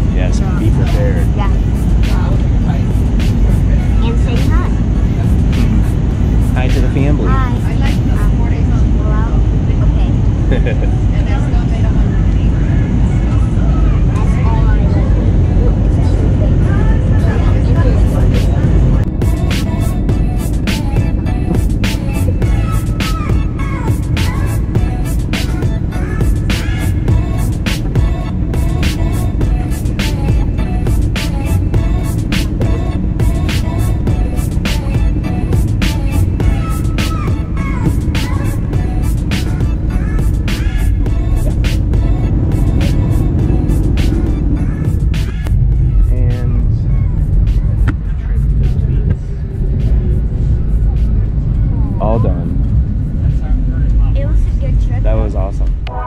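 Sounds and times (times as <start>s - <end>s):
music: 0.0s - 55.4s
airliner cabin rumble: 0.0s - 56.0s
indistinct voices: 0.0s - 56.0s.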